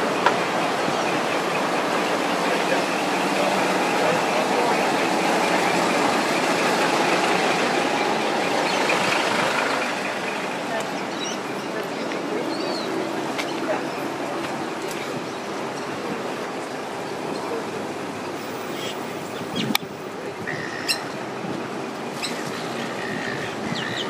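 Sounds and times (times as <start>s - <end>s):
indistinct voices: 0.0s - 21.3s.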